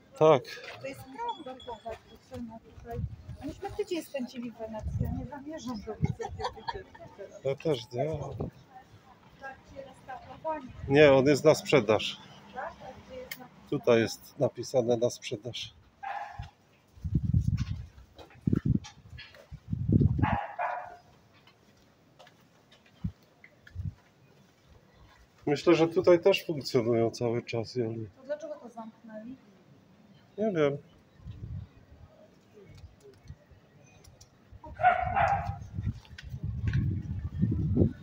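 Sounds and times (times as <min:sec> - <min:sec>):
small dog barking: 0:16.0 - 0:16.5, 0:20.2 - 0:21.0, 0:34.7 - 0:35.6.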